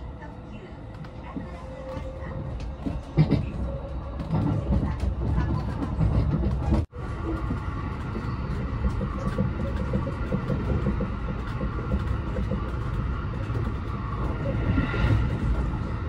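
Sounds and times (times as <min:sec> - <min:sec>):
train wheels rumbling on rail: 0:00.0 - 0:16.0.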